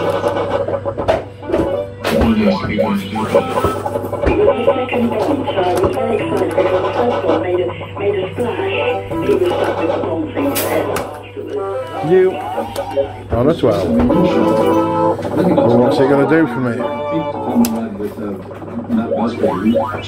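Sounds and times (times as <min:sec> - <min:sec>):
fruit machine electronic music: 0:00.0 - 0:13.3, 0:14.0 - 0:20.0.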